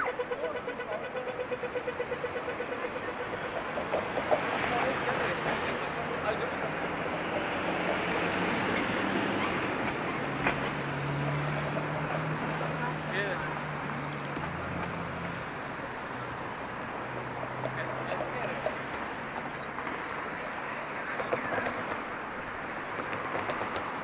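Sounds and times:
crossing signal rapid ticking: 0:00.0 - 0:09.0
city street noise: 0:00.0 - 0:24.0
vehicle engine hum: 0:00.0 - 0:24.0.

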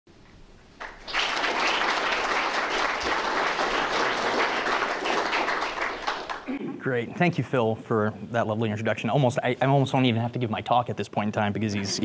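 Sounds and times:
audience applauding: 0:00.8 - 0:06.5.

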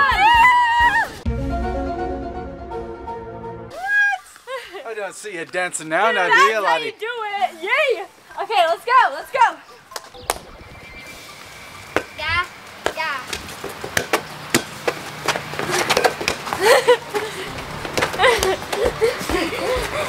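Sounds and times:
children shouting and squealing: 0:00.0 - 0:01.2.

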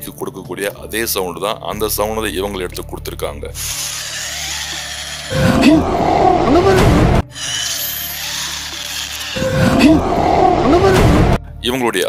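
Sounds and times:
low voice-like cry: 0:05.3 - 0:07.2, 0:09.5 - 0:11.4.

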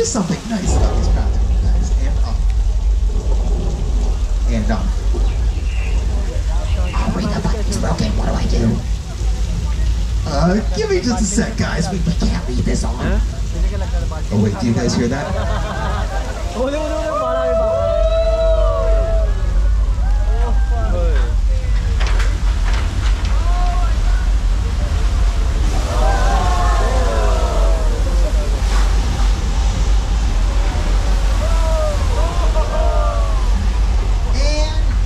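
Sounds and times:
water rushing down street: 0:00.0 - 0:35.0
people shouting in surprise: 0:16.6 - 0:21.4, 0:25.7 - 0:28.2, 0:31.3 - 0:33.7.

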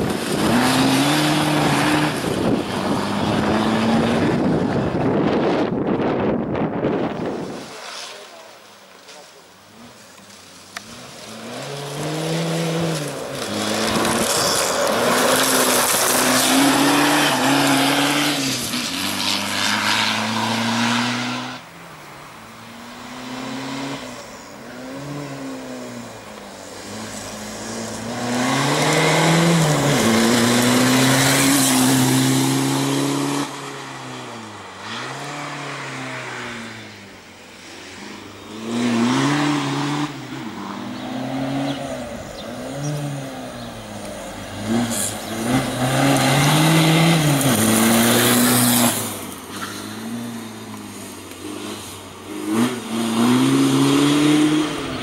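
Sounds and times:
racing car engine revving: 0:26.8 - 0:37.0, 0:38.5 - 0:55.0.

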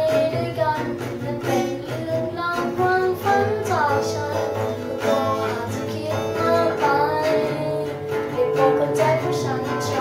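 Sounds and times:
acoustic guitar strumming: 0:00.0 - 0:10.0
boy singing pop song: 0:00.0 - 0:10.0.

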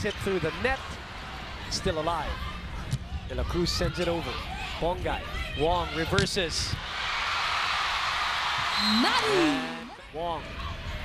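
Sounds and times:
arena crowd cheering: 0:06.8 - 0:11.0
person shouting: 0:08.8 - 0:09.9.

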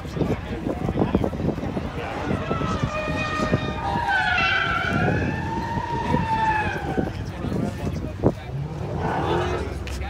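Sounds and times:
background chatter: 0:00.0 - 0:10.0
siren wailing: 0:02.3 - 0:07.2.

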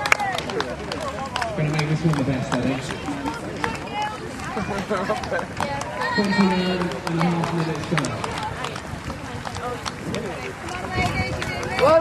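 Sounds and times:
people chattering: 0:00.0 - 0:12.0
runners' footfalls on grass: 0:00.0 - 0:12.0
male announcer voice: 0:06.0 - 0:08.3.

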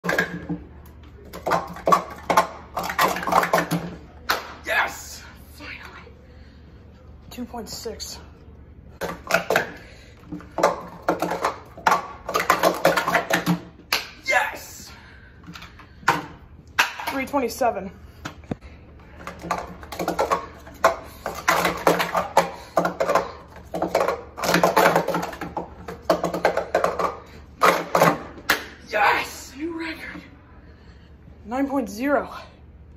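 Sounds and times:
plastic cups clattering: 0:00.0 - 0:04.6, 0:09.0 - 0:14.2, 0:19.0 - 0:28.8.

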